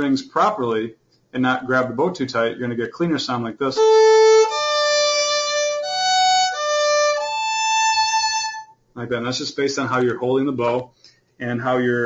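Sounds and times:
bowed violin notes: 3.7 - 8.8.

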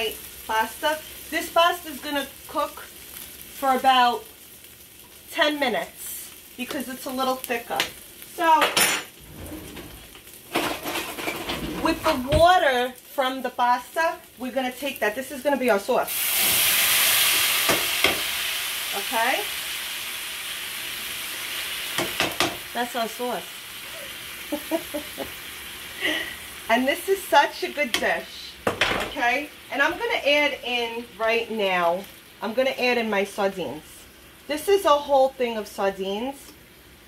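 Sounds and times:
sauce sizzling in a frying pan: 0.0 - 37.0
metal utensils clinking and rattling: 8.7 - 12.1.

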